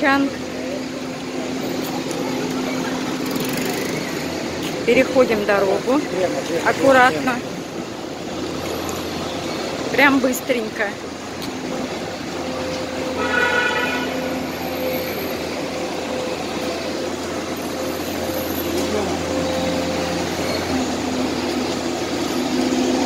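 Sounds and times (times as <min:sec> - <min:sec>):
motorbike and car engines passing: 0:00.0 - 0:23.0.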